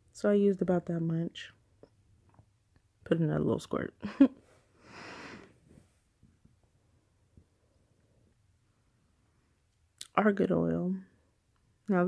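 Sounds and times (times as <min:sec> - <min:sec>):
soft breathy exhale: 0:04.8 - 0:05.6.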